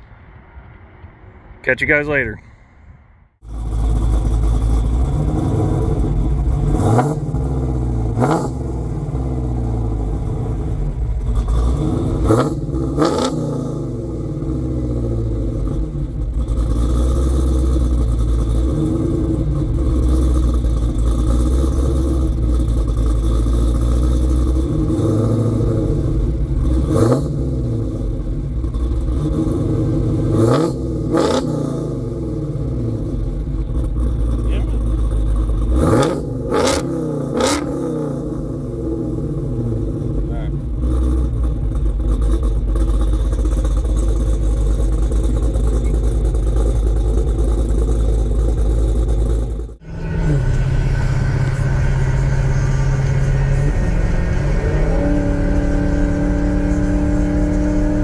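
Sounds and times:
car engine idling and revving: 0.0s - 58.0s.

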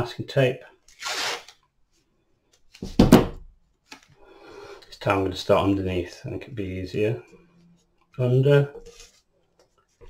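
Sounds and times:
masking tape ripping off roll: 0.9s - 1.6s.

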